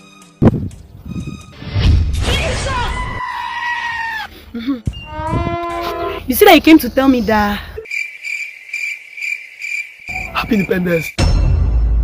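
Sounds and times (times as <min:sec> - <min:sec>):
cricket chirping: 0:06.5 - 0:11.3.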